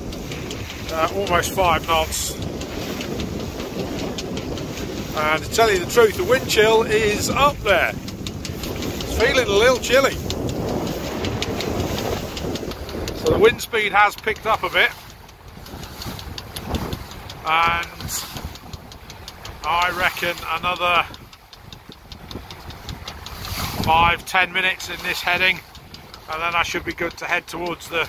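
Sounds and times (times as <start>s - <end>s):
hull pushing through choppy water: 0.0s - 28.0s
wind rumble on microphone: 0.0s - 28.0s.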